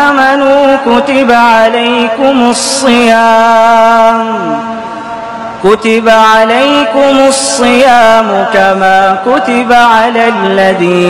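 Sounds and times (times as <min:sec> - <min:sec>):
man reciting melodically: 0:00.0 - 0:11.0.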